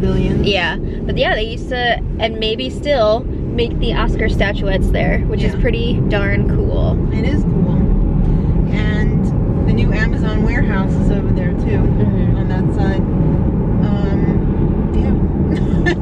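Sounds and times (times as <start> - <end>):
car road and engine noise: 0.0 - 16.0.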